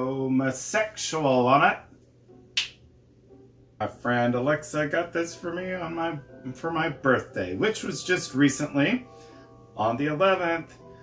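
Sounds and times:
finger snap: 0:02.5 - 0:02.9.

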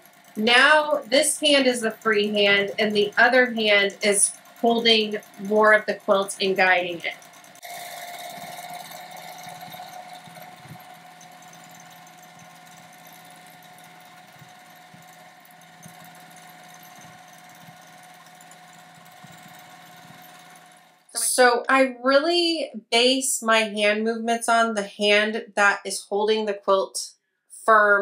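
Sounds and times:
sewing machine running: 0:00.0 - 0:21.4.

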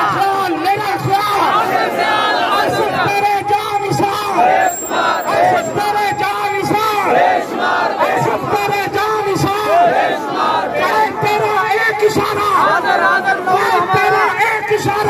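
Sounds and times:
crowd chanting slogans: 0:01.0 - 0:14.4.

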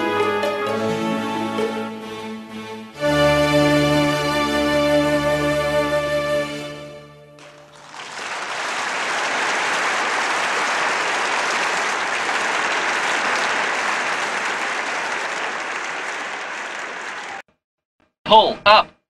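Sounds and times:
audience applause: 0:07.4 - 0:17.4.

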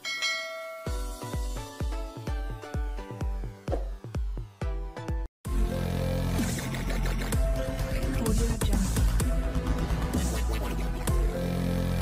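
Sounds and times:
bell-like chime: 0:00.0 - 0:01.6
electronic music with heavy bass: 0:01.3 - 0:12.0.

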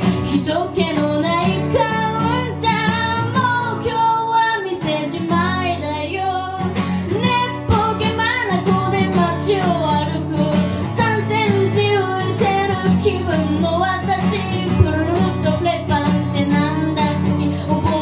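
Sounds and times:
person singing: 0:00.0 - 0:18.0
strummed acoustic guitar: 0:00.0 - 0:18.0.

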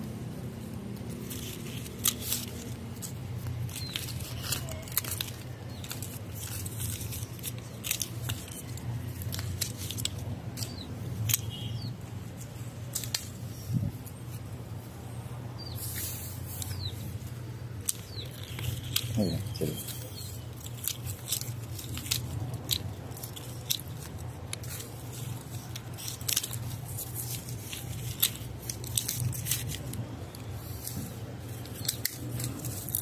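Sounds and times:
leaves rustling: 0:00.0 - 0:33.0
pruning shears snipping: 0:15.6 - 0:33.0.

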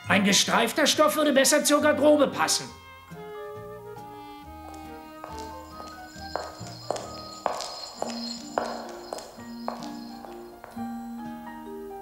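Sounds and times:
sharp evenly paced footsteps: 0:04.5 - 0:11.0.

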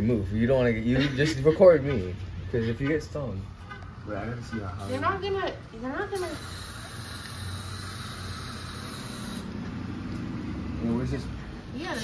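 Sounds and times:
aerosol spray hissing: 0:06.1 - 0:09.5.

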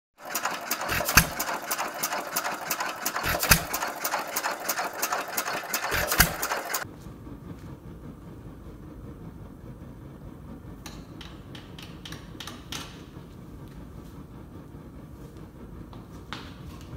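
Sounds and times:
stationary engine clattering: 0:00.2 - 0:16.9
sharp clicks: 0:00.4 - 0:06.8
low steady rumble: 0:06.1 - 0:16.9.

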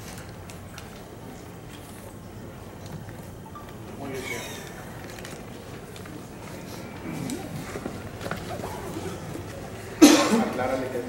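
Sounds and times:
background chatter of people: 0:01.2 - 0:11.0.

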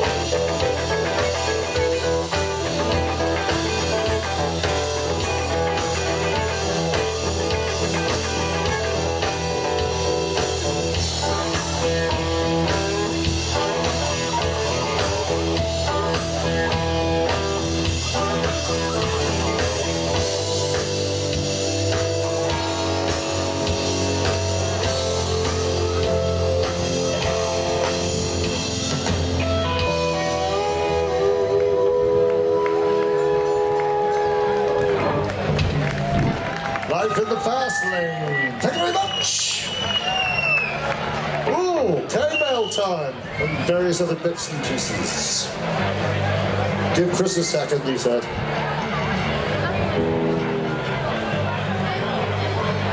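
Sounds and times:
steady bass line: 0:00.0 - 0:37.0, 0:45.5 - 0:52.9
electric guitar: 0:00.0 - 0:37.4, 0:44.8 - 0:52.9
drums: 0:00.0 - 0:52.9.

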